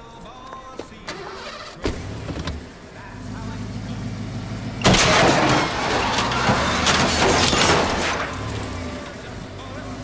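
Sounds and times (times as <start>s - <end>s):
car engine running: 1.4s - 10.0s
car crash: 4.8s - 9.4s.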